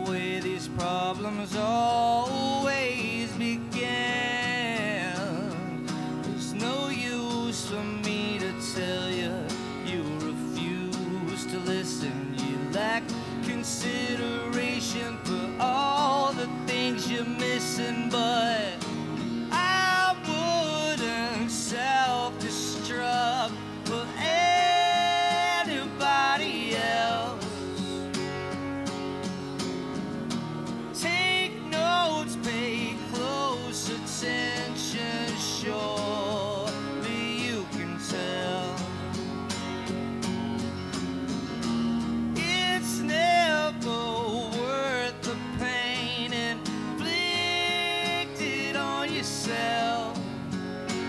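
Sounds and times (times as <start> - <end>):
acoustic guitar strumming: 0.0 - 51.0
electric guitar melody: 0.0 - 51.0.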